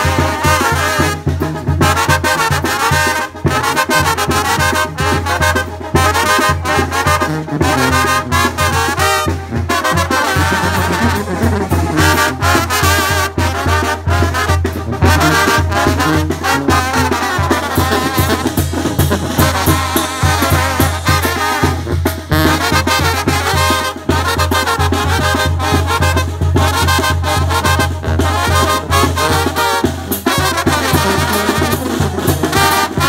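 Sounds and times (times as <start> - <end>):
trombones and trumpets playing: 0.0 - 33.0.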